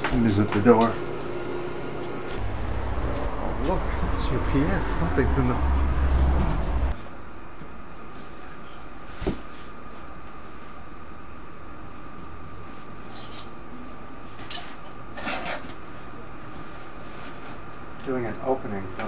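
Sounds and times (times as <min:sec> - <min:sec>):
background hum: 0:00.0 - 0:18.0.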